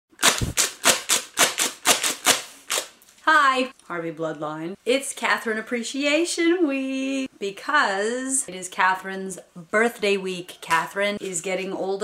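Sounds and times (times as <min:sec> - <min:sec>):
party blower puffs: 0:00.2 - 0:02.8.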